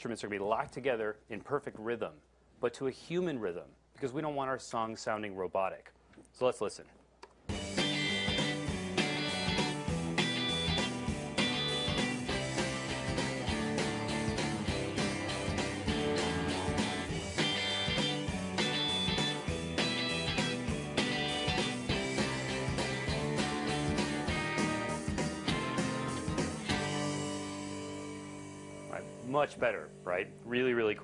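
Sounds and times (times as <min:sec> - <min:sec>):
rock song: 0:07.5 - 0:29.6.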